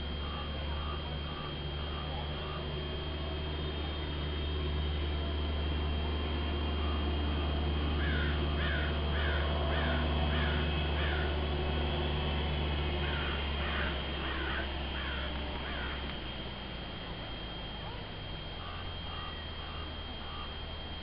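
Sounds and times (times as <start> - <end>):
bird calling: 0.0 - 4.2, 7.9 - 16.2, 17.8 - 20.7.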